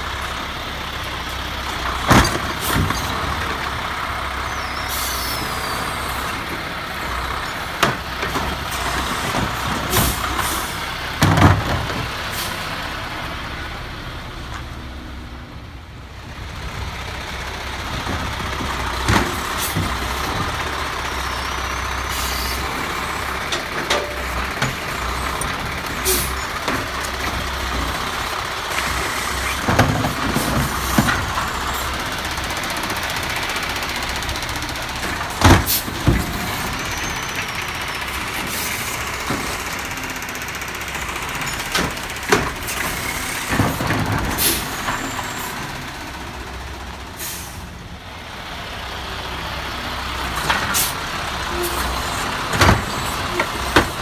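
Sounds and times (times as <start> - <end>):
garbage truck engine: 0.0 - 54.0
clanks and knocks of cart: 1.7 - 3.7, 11.1 - 12.2, 17.8 - 20.8, 22.8 - 45.4, 50.3 - 54.0.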